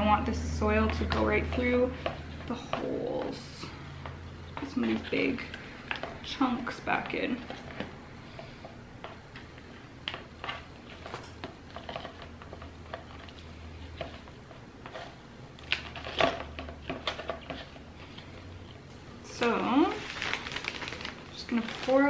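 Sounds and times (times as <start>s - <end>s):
moss crackling and rustling: 19.7s - 22.0s.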